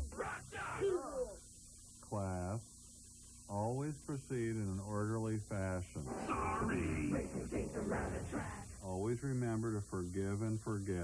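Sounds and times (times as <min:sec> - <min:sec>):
high-pitched tape whine: 0:05.5 - 0:11.0
tape hum: 0:05.9 - 0:09.2.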